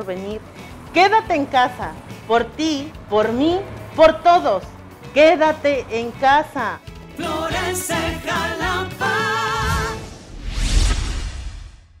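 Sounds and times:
rising whoosh: 0:09.1 - 0:12.0
deep rumble: 0:09.6 - 0:12.0.

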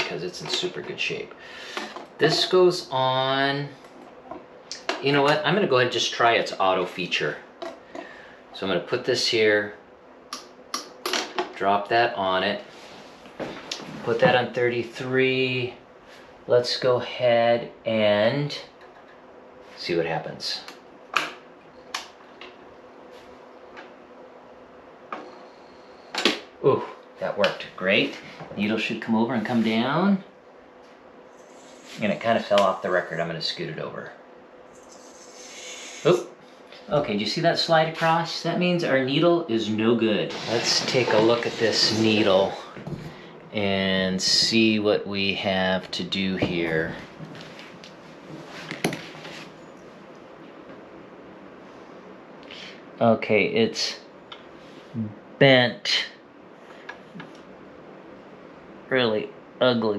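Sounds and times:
faint room noise: 0:00.0 - 0:59.9
faint steady hum: 0:00.0 - 0:59.9.

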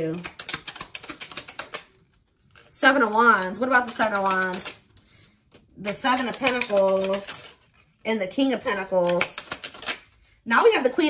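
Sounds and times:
cards being shuffled: 0:00.0 - 0:10.3.

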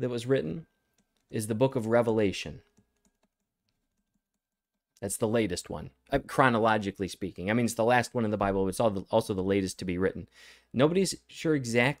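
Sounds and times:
stylus ticking on drawing tablet: 0:00.7 - 0:05.0.

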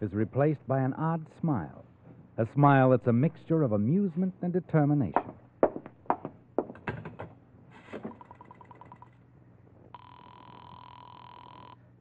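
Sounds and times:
faint low hum: 0:07.3 - 0:12.0
telephone ringing tone: 0:08.1 - 0:09.2, 0:09.9 - 0:11.9.

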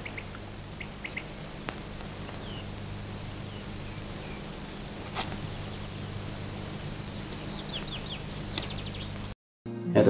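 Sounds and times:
faint bird chirps: 0:00.0 - 0:01.5, 0:02.3 - 0:09.4
film soundtrack hiss and hum: 0:00.0 - 0:10.0.

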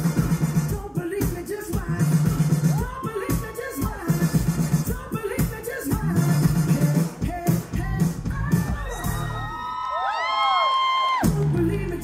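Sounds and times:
pop-funk music: 0:00.0 - 0:12.0
audience cheering: 0:08.3 - 0:12.0.

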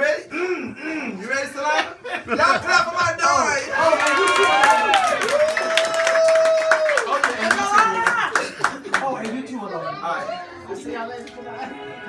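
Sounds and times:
audience clapping along: 0:03.8 - 0:09.4.

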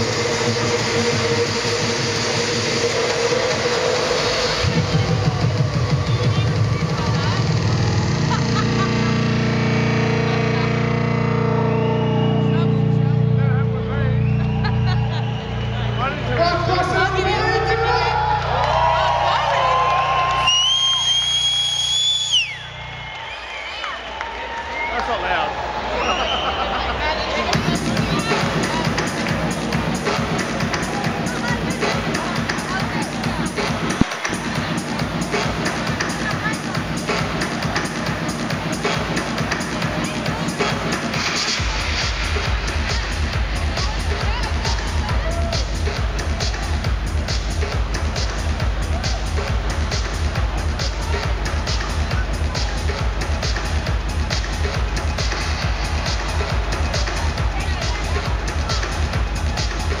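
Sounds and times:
kick-drum beat: 0:00.0 - 0:10.0, 0:27.6 - 1:00.0
electronic dance music: 0:00.0 - 0:26.0, 0:26.7 - 1:00.0
crowd noise: 0:00.0 - 1:00.0.

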